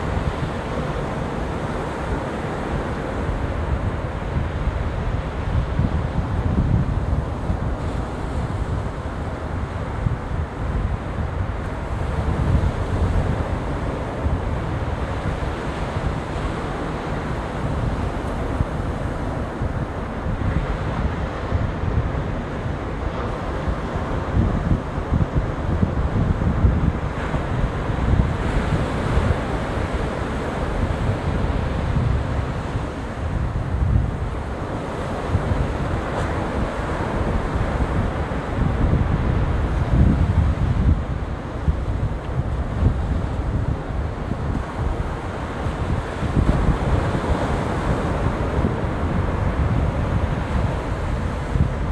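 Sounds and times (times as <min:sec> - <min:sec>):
ocean surf washing onto beach: 0:00.0 - 0:51.9
wind buffeting microphone: 0:00.0 - 0:51.9.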